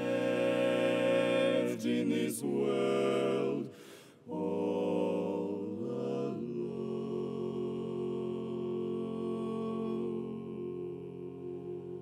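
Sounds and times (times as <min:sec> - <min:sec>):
men singing a cappella harmony: 0:00.0 - 0:12.0.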